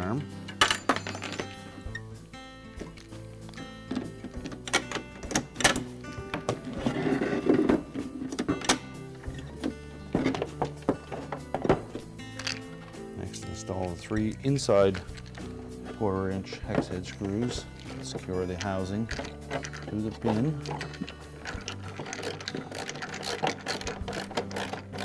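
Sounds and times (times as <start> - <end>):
background music: 0.0 - 25.0
plastic and metal parts clicking: 16.5 - 25.0.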